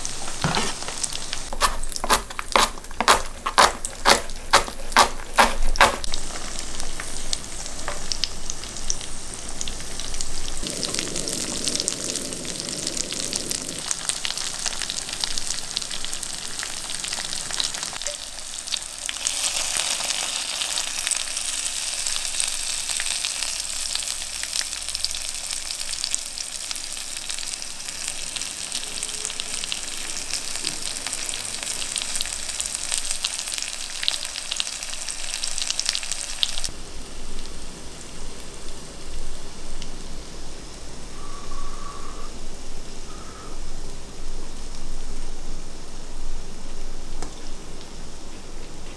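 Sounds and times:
tofu sizzling in hot oil: 0.0 - 40.6.

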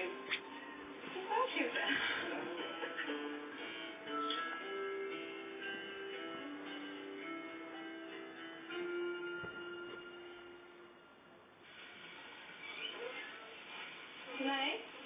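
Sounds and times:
soft instrumental music from television: 0.0 - 15.0.

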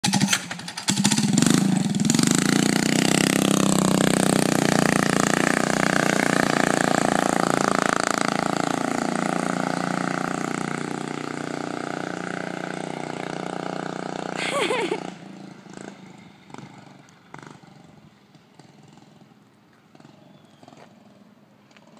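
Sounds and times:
small bike engine sputtering: 0.0 - 21.9.

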